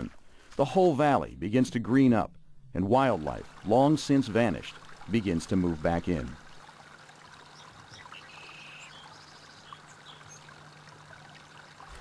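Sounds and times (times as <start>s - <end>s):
stream running water: 0.0s - 1.8s, 2.8s - 12.0s
low steady hum: 0.0s - 12.0s.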